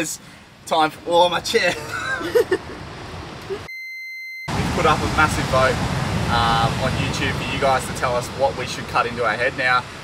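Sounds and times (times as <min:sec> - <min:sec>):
censor bleep: 0:03.7 - 0:04.5.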